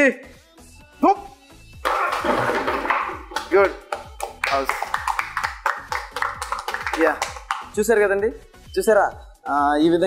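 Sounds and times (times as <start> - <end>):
background music with drum beat: 0.2 - 10.0
people clapping: 1.8 - 7.8.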